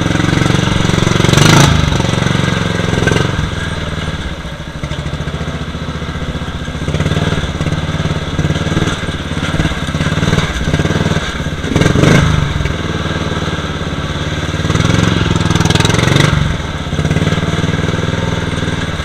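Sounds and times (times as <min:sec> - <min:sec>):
riding mower engine under load: 0:00.0 - 0:19.0.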